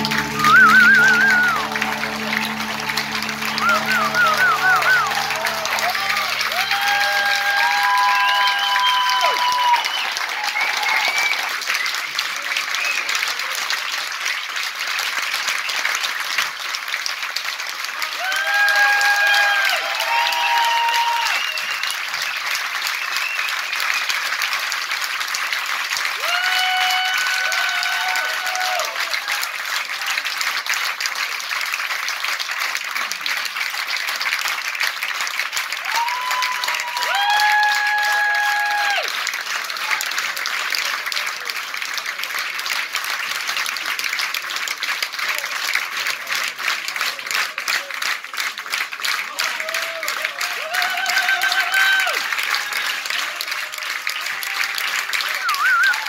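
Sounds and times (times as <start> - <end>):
high-pitched calls from crowd: 0.0 - 11.6, 55.4 - 56.0
audience applauding: 0.0 - 56.0.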